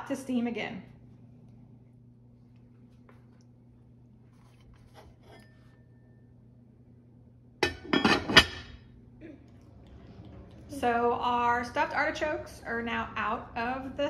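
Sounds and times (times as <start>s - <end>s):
faint low hum: 0.0s - 14.0s
metal pot lid clattering: 7.6s - 8.8s.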